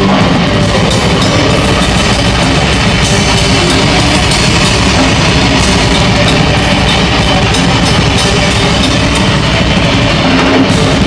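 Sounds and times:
cymbal hits: 0:00.0 - 0:11.0
heavy rock band playing: 0:00.0 - 0:11.0.

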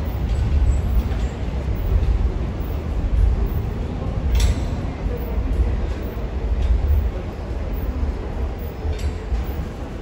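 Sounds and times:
low steady station rumble: 0:00.0 - 0:10.0.

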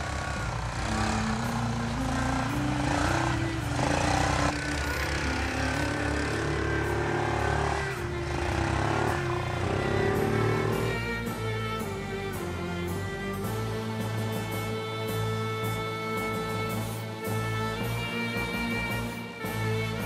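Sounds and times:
atv engine revving: 0:00.0 - 0:12.0
background music with stepped melody: 0:00.0 - 0:20.0.

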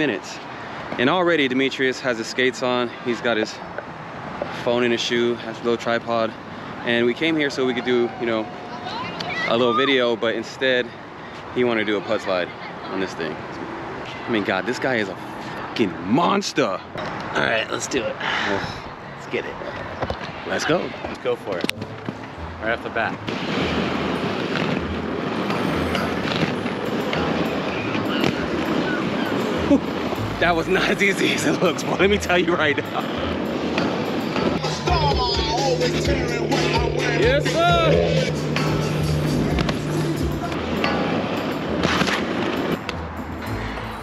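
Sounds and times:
background music with bass line: 0:21.8 - 0:44.0
skate wheels rolling on asphalt: 0:23.0 - 0:34.6, 0:38.1 - 0:42.9
inline skates scraping metal rail: 0:38.8 - 0:42.8.

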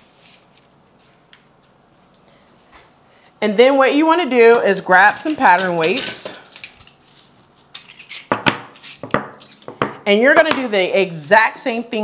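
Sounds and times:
metal coins clinking: 0:04.9 - 0:07.0, 0:07.7 - 0:09.8.

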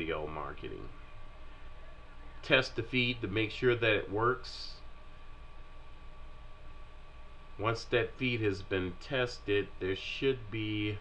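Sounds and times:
low hum: 0:00.0 - 0:11.0
steady hiss: 0:07.5 - 0:11.0
thin steady high tone: 0:07.6 - 0:11.0.

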